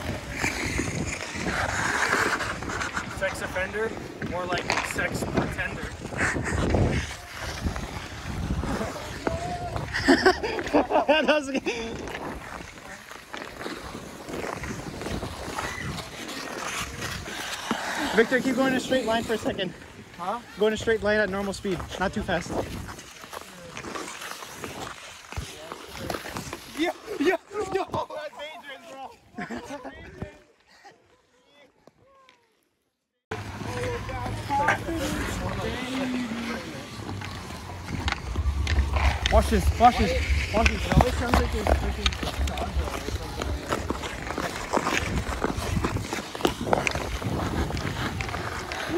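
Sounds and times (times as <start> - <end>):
skate blades scraping ice: 0.0 - 32.6, 33.3 - 48.9
low rumble: 33.3 - 46.1.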